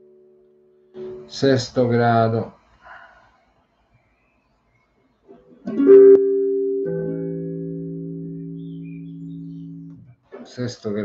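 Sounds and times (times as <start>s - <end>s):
clean electric guitar chord: 5.8s - 10.0s.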